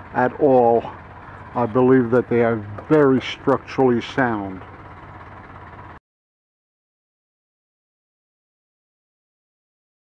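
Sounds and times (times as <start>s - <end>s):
low microphone hum: 0.0s - 6.0s.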